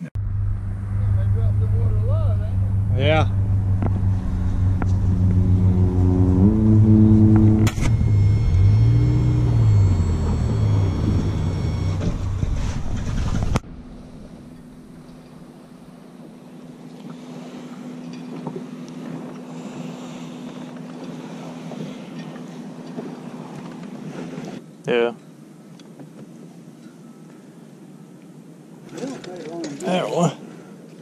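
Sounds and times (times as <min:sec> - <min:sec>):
thin high whine: 0:00.0 - 0:24.6
quiet steady hum: 0:00.0 - 0:28.9
outboard motor running: 0:00.2 - 0:24.6.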